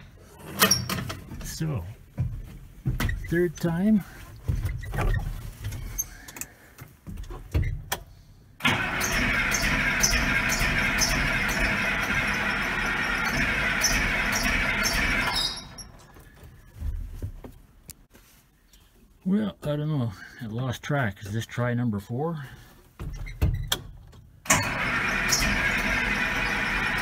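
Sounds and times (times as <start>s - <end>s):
starter cranking diesel engine: 8.6s - 16.1s, 24.4s - 27.0s.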